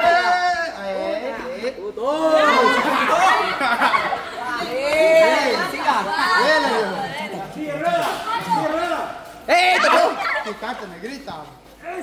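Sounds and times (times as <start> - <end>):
group chatter: 0.0 - 12.0.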